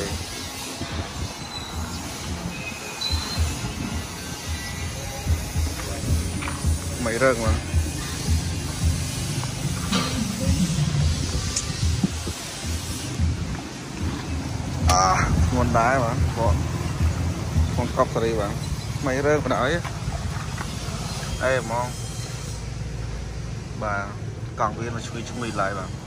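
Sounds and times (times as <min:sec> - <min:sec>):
low engine rumble: 0:03.4 - 0:25.0.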